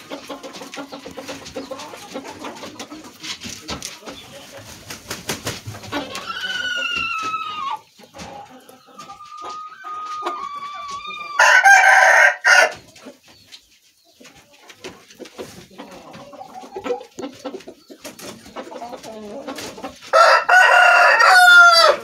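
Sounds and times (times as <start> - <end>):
rooster crowing: 9.6 - 12.8, 20.1 - 22.0.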